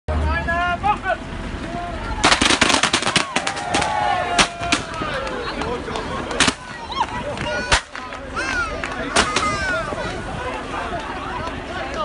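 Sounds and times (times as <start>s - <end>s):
confetti cannons popping: 2.2s - 4.9s.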